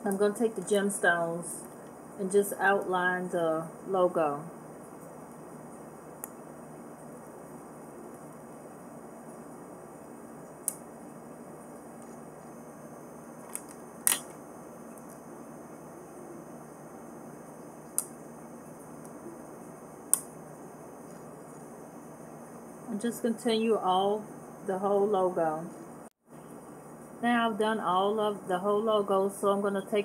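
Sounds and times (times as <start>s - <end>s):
low room hiss: 0.0s - 30.0s.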